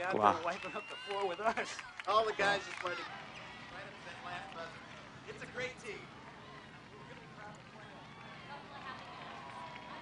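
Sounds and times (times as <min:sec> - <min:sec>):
murmur of voices: 0:01.4 - 0:10.0.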